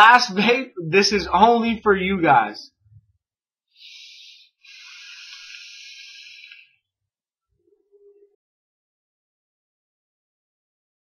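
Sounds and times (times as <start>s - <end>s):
vape exhale hiss: 3.8s - 6.6s.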